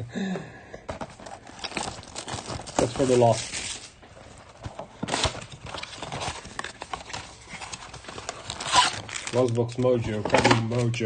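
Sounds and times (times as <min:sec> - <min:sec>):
cardboard box opening: 0:00.9 - 0:09.6
wrapped packs rustling: 0:01.0 - 0:11.0.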